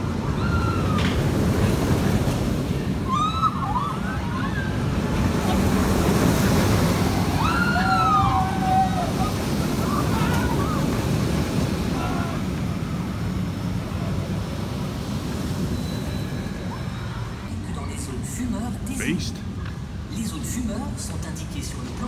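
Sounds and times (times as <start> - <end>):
roller coaster rumbling on track: 0.0 - 22.0
riders screaming: 0.2 - 1.2, 3.0 - 5.1, 7.0 - 11.2, 11.8 - 12.9.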